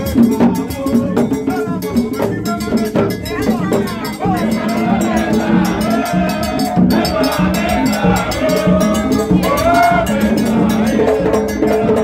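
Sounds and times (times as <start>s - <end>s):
crowd voices: 0.0s - 12.0s
drums: 0.0s - 12.0s.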